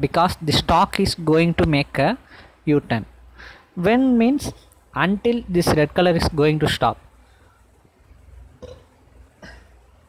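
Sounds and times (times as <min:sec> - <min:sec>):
faint throat noises: 0:08.6 - 0:10.0.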